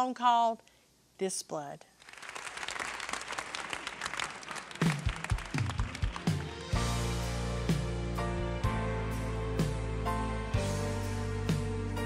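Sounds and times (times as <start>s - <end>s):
audience applauding: 2.0s - 6.9s.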